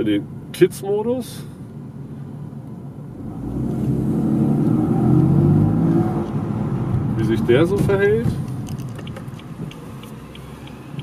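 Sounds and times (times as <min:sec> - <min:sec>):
car engine accelerating from inside: 0:03.1 - 0:11.0.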